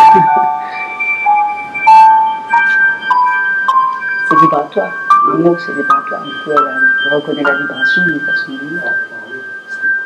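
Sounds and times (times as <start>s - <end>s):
synthesized sustained tones: 0.0s - 10.0s.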